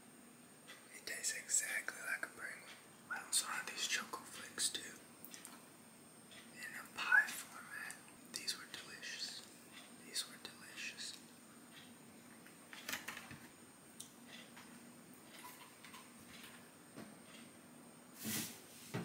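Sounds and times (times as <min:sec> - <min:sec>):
man whispering: 0:00.9 - 0:05.0, 0:06.5 - 0:11.3.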